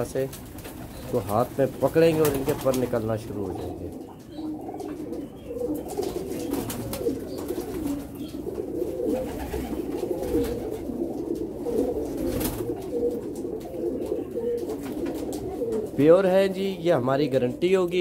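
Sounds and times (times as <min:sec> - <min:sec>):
pigeons cooing: 0:00.0 - 0:18.0.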